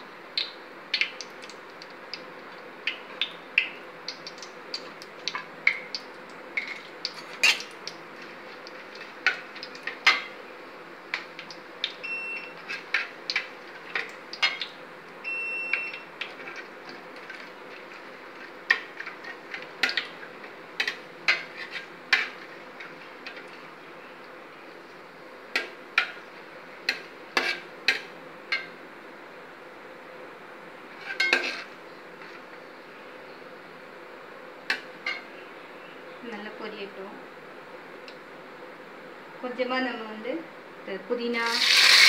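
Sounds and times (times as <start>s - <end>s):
low background noise: 0.0s - 42.0s
ladle scraping a metal pot: 20.8s - 23.4s, 31.0s - 31.7s.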